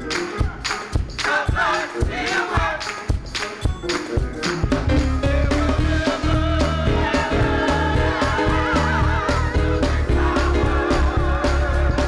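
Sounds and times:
gospel band and choir: 0.0 - 12.0
repeating bass line: 4.6 - 12.0.

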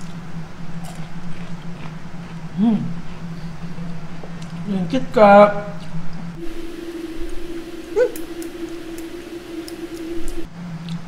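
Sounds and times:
man humming: 6.4 - 10.4.

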